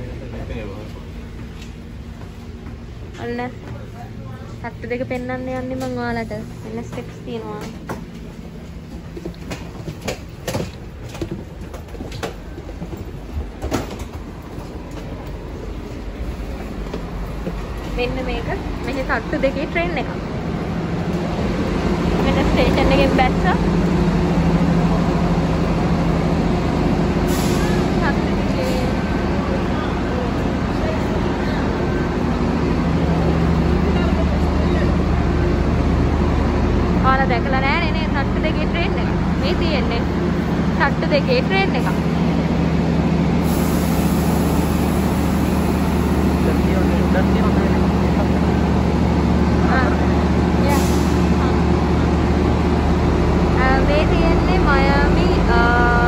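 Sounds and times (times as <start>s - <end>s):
train engine low drone: 0.0s - 56.0s.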